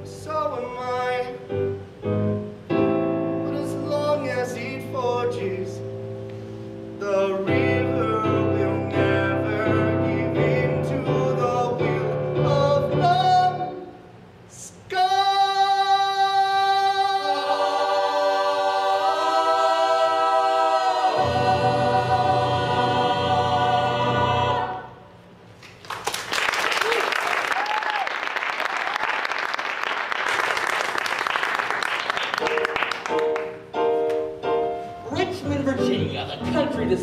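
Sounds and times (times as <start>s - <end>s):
audience applauding: 25.6s - 33.6s.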